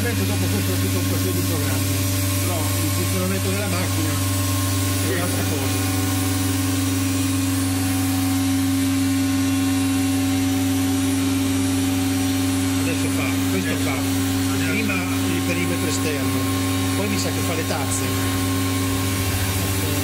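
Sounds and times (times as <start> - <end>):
cnc router humming: 0.0 - 20.0.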